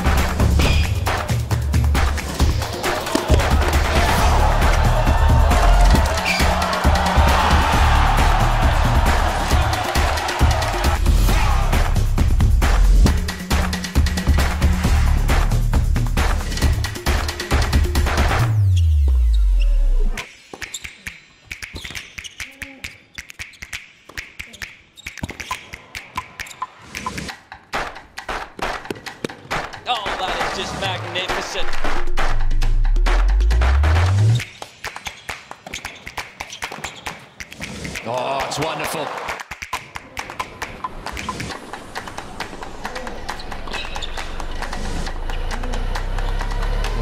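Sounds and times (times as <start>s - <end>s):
rackets striking tennis ball: 2.3s - 3.9s
shoe squeaks: 18.6s - 26.9s, 34.5s - 37.6s, 43.3s - 44.7s.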